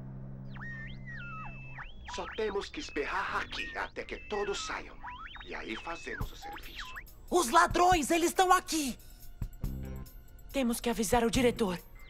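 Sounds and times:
electronic whistling tones: 0.5 - 7.1.

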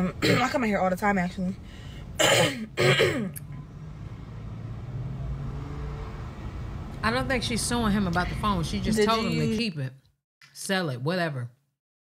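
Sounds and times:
person clearing throat: 0.2 - 0.6, 2.2 - 3.6.

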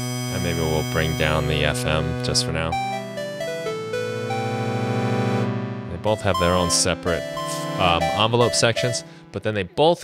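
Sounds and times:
synth chord: 0.1 - 9.6.

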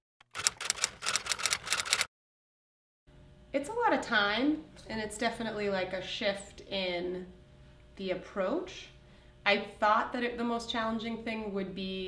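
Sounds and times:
rapid clicking and scratching: 0.2 - 2.1.

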